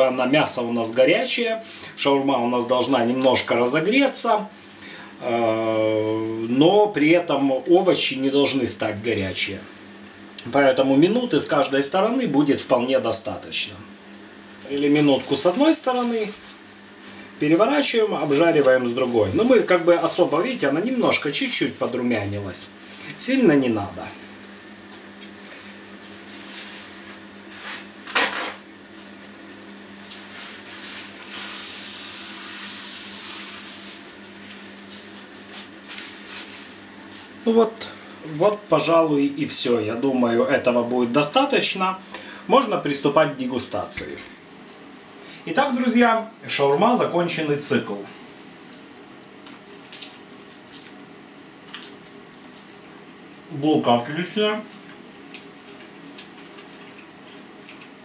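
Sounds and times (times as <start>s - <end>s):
steady low hum: 0.0s - 58.0s
frying hiss in a pan: 13.9s - 45.8s.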